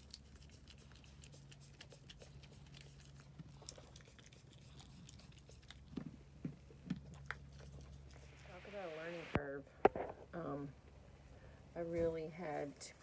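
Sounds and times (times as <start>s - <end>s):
sheep licking and crunching: 0.0s - 8.6s.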